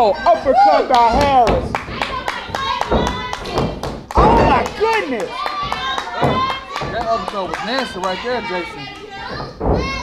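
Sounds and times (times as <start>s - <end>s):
dull thuds: 1.0s - 5.0s, 5.6s - 8.0s, 9.2s - 10.0s
sharp claps and slaps: 1.1s - 8.2s.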